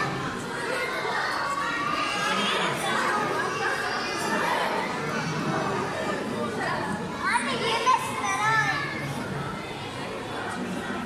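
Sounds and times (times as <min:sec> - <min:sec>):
background hubbub: 0:00.0 - 0:11.0
children calling and chattering: 0:00.0 - 0:11.0.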